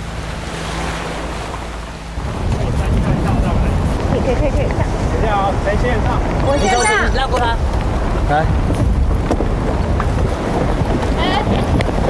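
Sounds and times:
surf washing over pebbles: 0:00.0 - 0:12.0.

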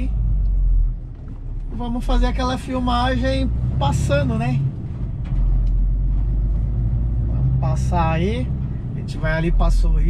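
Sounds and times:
road noise: 0:00.0 - 0:10.0
truck diesel engine drone: 0:00.0 - 0:10.0.

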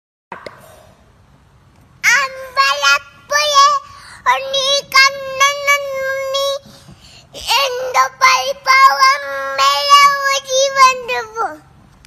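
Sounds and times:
toddler girl singing: 0:02.0 - 0:11.6.

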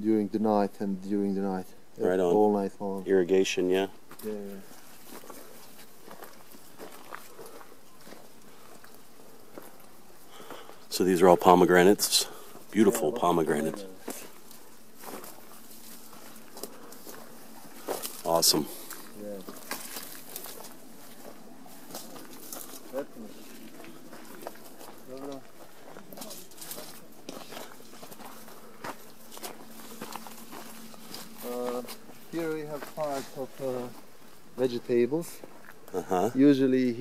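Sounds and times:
steady low outdoor hiss: 0:00.0 - 0:37.0
grass rustling: 0:03.0 - 0:37.0
faint footsteps through long grass: 0:03.6 - 0:37.0
twigs ticking: 0:14.0 - 0:33.1.

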